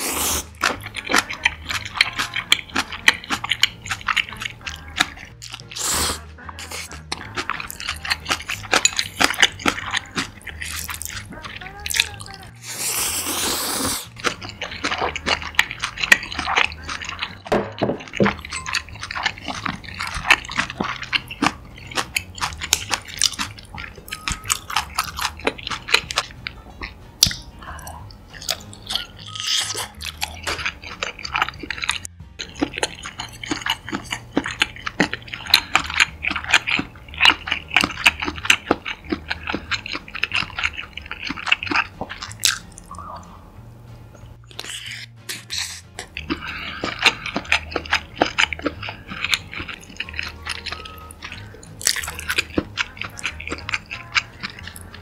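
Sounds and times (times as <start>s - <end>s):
wet chewing: 0.0s - 43.4s, 44.1s - 55.0s.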